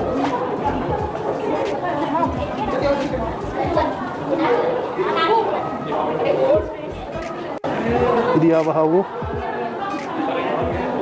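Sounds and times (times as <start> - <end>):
chatter of voices in hall: 0.0 - 11.0.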